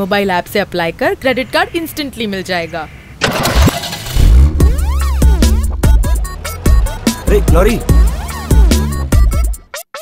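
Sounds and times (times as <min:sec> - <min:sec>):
vehicle engine starting: 0:03.2 - 0:09.3
music with sliding tones: 0:04.2 - 0:09.7.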